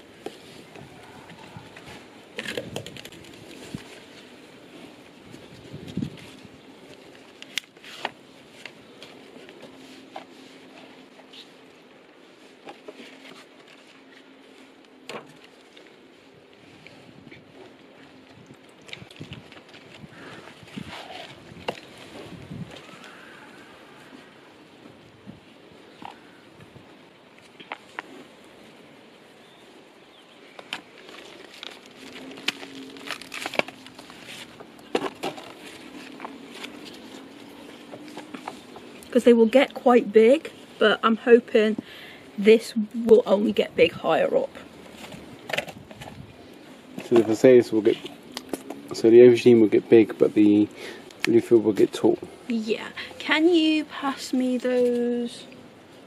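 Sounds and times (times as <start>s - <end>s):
soil rustling and crackling: 0.0s - 56.0s.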